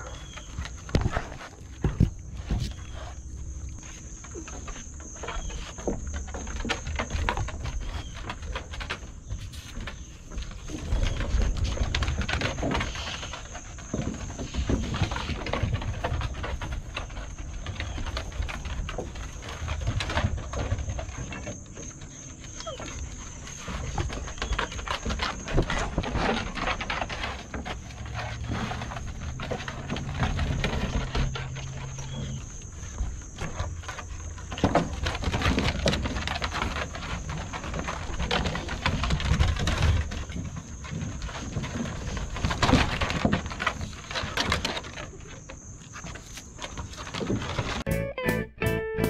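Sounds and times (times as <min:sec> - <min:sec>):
dog paws scrambling on wooden deck: 0:00.0 - 0:47.9.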